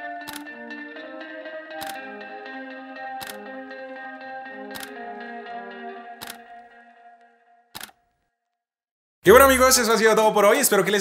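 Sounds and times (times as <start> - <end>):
background music held tones: 0.0 - 7.7
camera shutter click: 1.8 - 2.0, 3.2 - 3.4, 4.8 - 5.0, 6.2 - 6.4.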